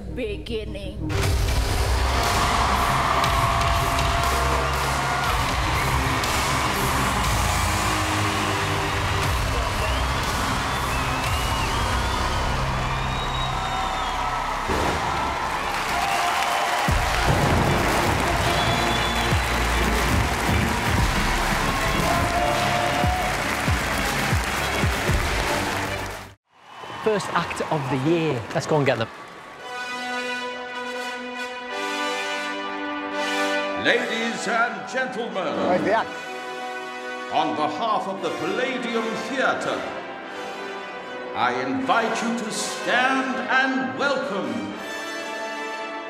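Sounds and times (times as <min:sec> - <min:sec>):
music playing: 0:00.0 - 0:26.4, 0:28.9 - 0:46.0
audience applause and cheering: 0:01.2 - 0:32.1.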